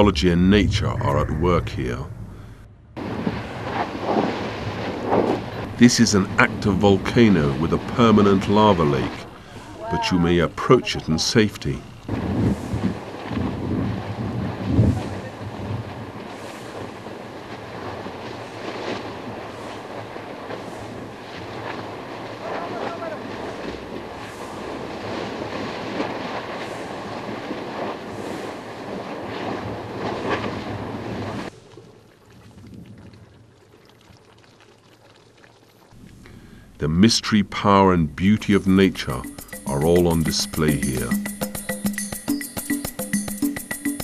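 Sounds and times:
people's voices: 0.0s - 2.1s, 5.8s - 11.9s, 36.8s - 41.2s
steady rushing noise: 0.0s - 28.8s
wind on microphone: 11.8s - 31.5s.

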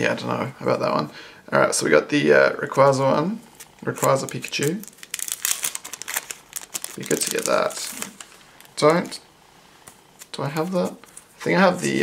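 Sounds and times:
paper wrapper crinkling: 3.6s - 9.2s.

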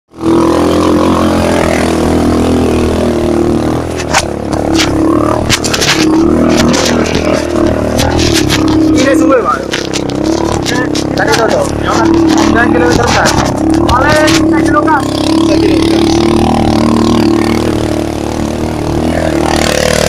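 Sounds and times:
motorcycle engine under load: 0.1s - 20.0s.

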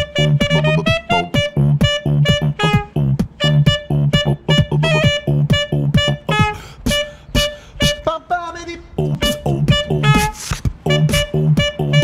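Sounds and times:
beatboxed kick and snare: 0.0s - 8.2s, 9.0s - 12.0s
saxophone short repeated notes: 0.0s - 8.2s, 9.0s - 12.0s.

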